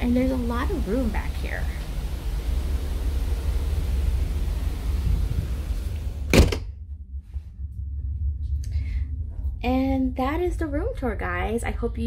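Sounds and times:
wind buffeting microphone: 0.0s - 6.3s
low rumble: 0.0s - 12.0s
door shutting with thud: 4.9s - 6.7s.

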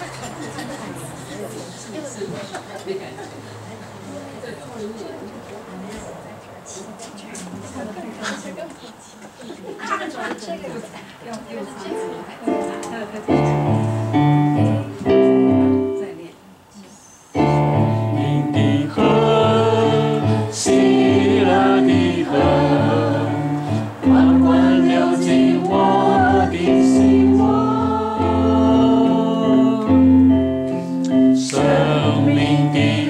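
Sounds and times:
electronic keyboard chords: 12.5s - 16.1s, 17.4s - 33.0s.

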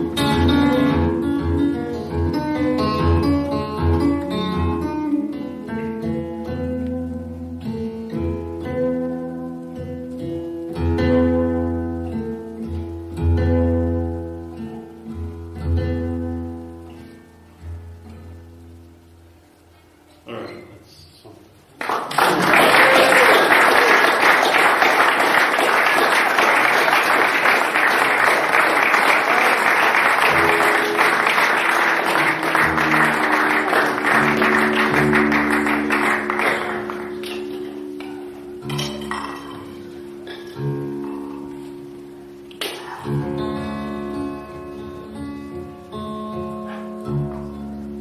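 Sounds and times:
acoustic guitar strumming: 0.0s - 20.8s, 22.5s - 48.0s.

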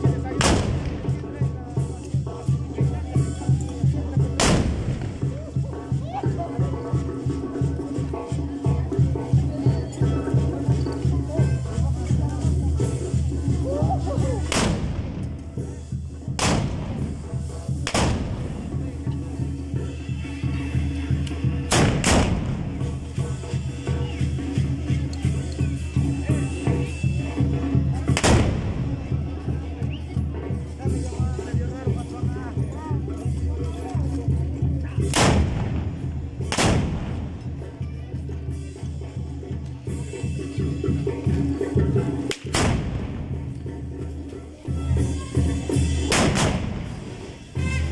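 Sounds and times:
loud musket shots: 4.4s - 5.0s, 16.4s - 16.9s, 17.8s - 18.4s, 21.7s - 22.6s, 28.2s - 28.6s, 35.1s - 35.8s, 36.5s - 37.2s, 46.1s - 46.8s
band music with steady beat: 39.8s - 47.9s.

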